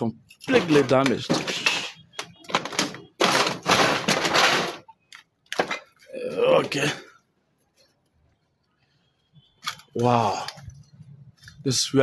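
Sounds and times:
debris crunching and scraping: 0:00.5 - 0:04.9.

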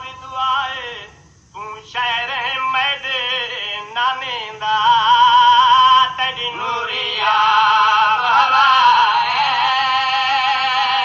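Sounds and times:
man chanting a mourning lament: 0:00.0 - 0:11.0.

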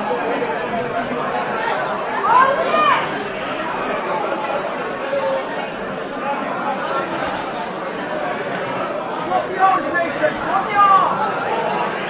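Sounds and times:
spectators chattering: 0:00.0 - 0:12.0.

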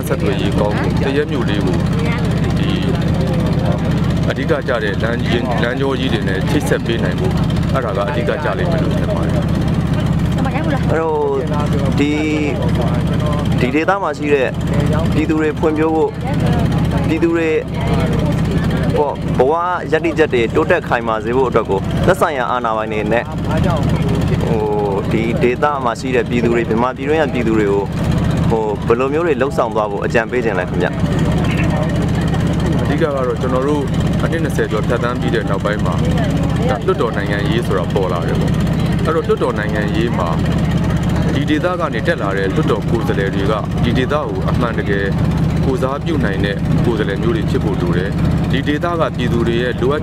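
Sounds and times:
man speaking: 0:00.0 - 0:10.0, 0:10.8 - 0:16.2, 0:17.0 - 0:40.6, 0:41.2 - 0:50.0
man talking: 0:00.0 - 0:10.0, 0:10.8 - 0:16.2, 0:17.0 - 0:40.6, 0:41.2 - 0:50.0
boat engine droning: 0:00.0 - 0:50.0.

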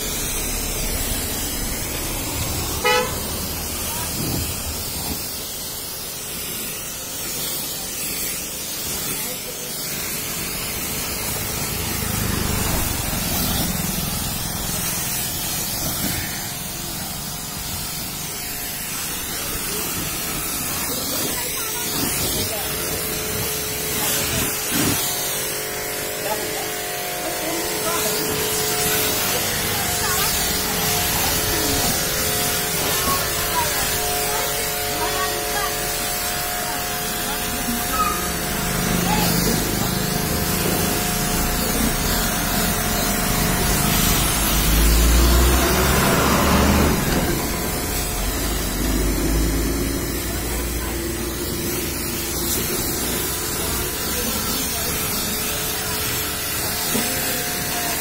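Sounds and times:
pressure washer spraying: 0:00.0 - 0:58.0.

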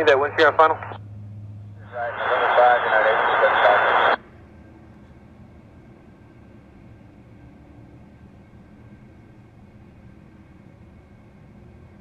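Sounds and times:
radio voice garbled in static: 0:01.9 - 0:04.2.

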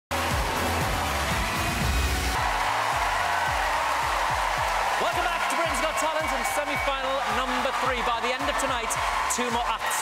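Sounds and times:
pounding drum beat: 0:00.1 - 0:10.0
television theme music: 0:00.1 - 0:10.0.

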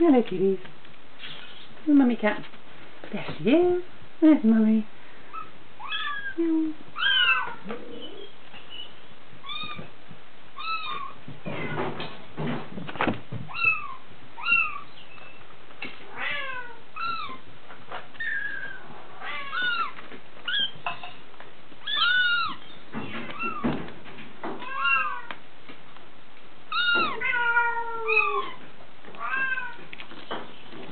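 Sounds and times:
kittens mewing: 0:05.3 - 0:08.4, 0:18.2 - 0:20.8, 0:21.8 - 0:22.6, 0:26.7 - 0:28.6.

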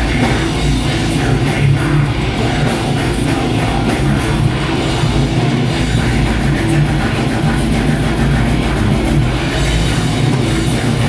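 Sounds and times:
bass guitar: 0:00.0 - 0:11.0
distorted electric guitars: 0:00.0 - 0:11.0
fast drumming: 0:00.0 - 0:11.0.

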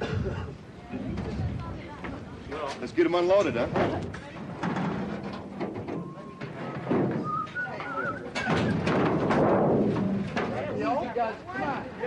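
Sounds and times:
aluminum canoes knocking and scraping: 0:03.4 - 0:11.2
people's voices: 0:05.6 - 0:12.0.

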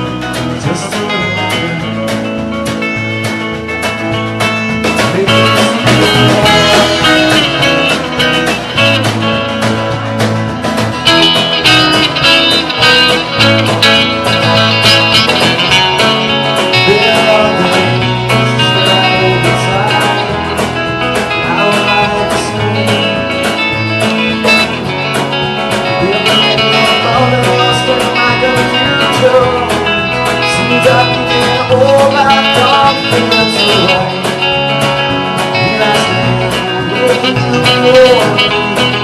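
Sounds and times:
bass guitar: 0:00.0 - 0:39.0
drums with cymbals: 0:00.0 - 0:39.0
electric guitar: 0:00.0 - 0:39.0.

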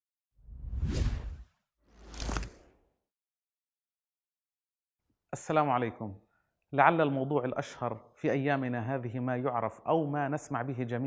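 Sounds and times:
whoosh sound effect: 0:00.5 - 0:02.7.

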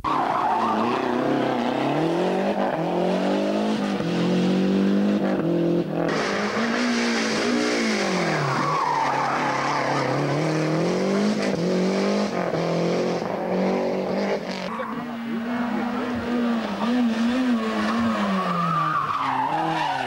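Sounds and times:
rally car engine revving: 0:00.0 - 0:20.0.

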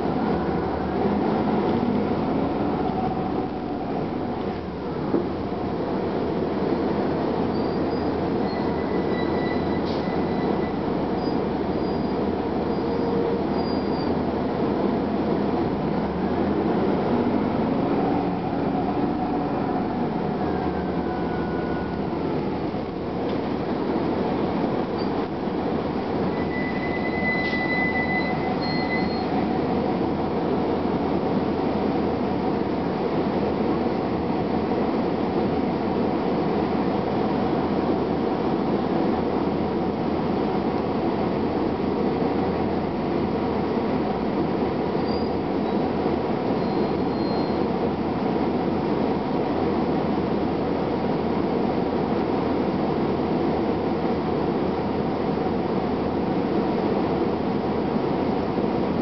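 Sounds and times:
bus engine and transmission: 0:00.0 - 0:59.0
road noise: 0:00.0 - 0:59.0
high squeals: 0:07.5 - 0:12.2, 0:26.3 - 0:29.5.

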